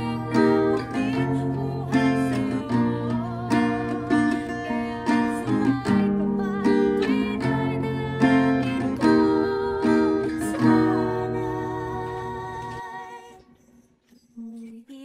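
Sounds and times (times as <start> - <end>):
acoustic guitar strumming: 0.0 - 13.3.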